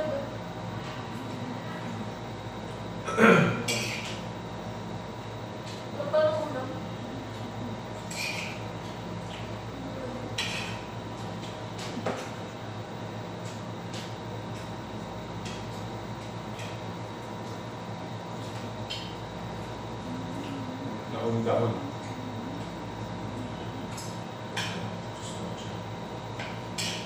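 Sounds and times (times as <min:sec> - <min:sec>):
low room hum: 0:00.0 - 0:27.0.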